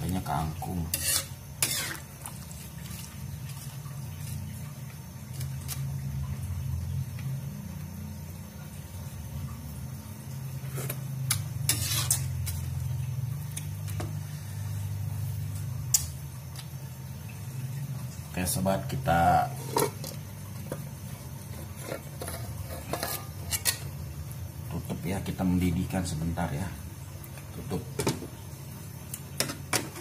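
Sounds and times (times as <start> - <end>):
stir-fry cooking in a wok: 0.0 - 30.0
metal spatula scraping wok: 0.8 - 2.1, 11.6 - 12.7, 21.5 - 23.9.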